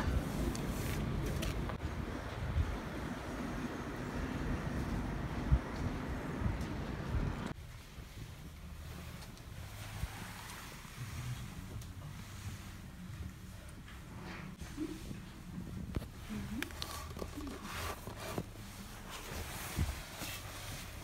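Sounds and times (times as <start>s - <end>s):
wind buffeting microphone: 1.6s - 8.6s.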